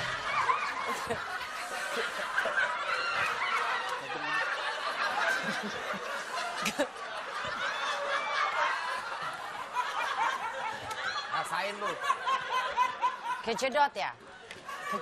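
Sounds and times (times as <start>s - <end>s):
people laughing: 0.0s - 15.0s.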